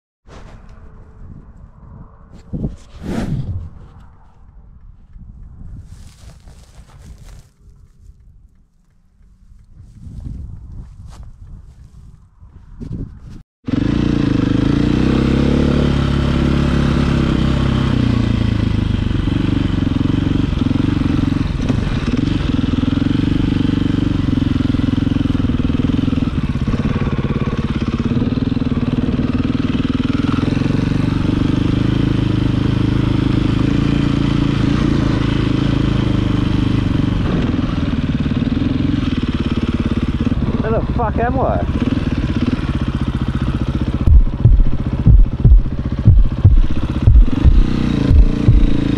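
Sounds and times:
dirt bike engine revving: 13.7s - 48.9s.

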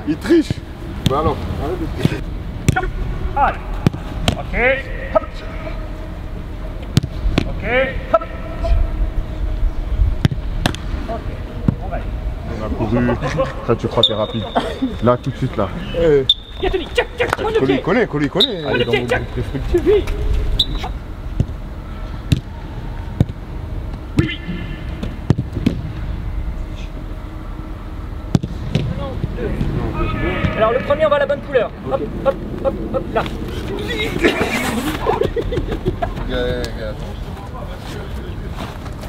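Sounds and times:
steady low rumble: 0.0s - 39.0s
football thudding: 6.9s - 7.5s, 22.3s - 22.5s, 28.3s - 29.0s.

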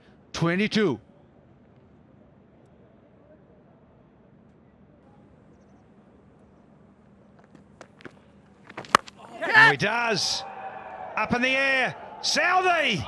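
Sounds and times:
stadium ambience: 0.0s - 13.0s
cricket bat striking ball: 8.7s - 9.2s.

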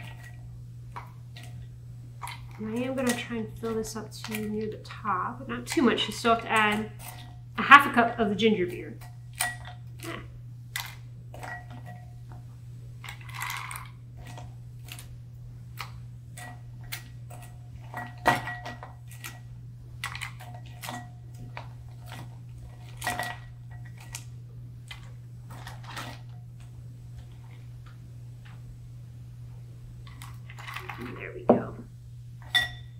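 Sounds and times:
steady low hum: 0.0s - 32.9s
ice rattling: 13.0s - 15.0s, 30.1s - 31.4s.

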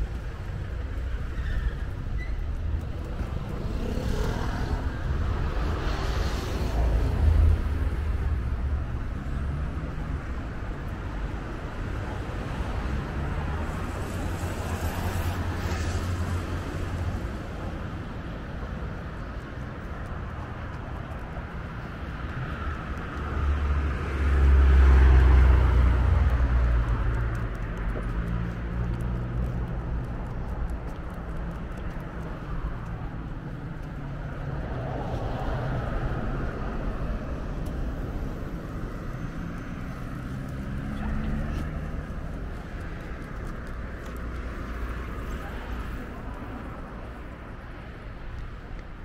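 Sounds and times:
road traffic rumble: 0.0s - 49.0s.

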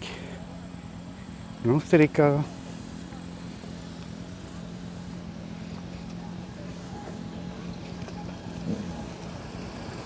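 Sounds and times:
car engine idling: 0.0s - 10.0s
faint outdoor noise: 0.0s - 10.0s.

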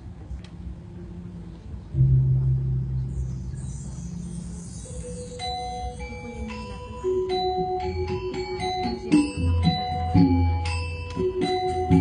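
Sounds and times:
deep gong stroke: 2.0s - 4.5s
ringing metallophone notes: 2.0s - 12.0s.

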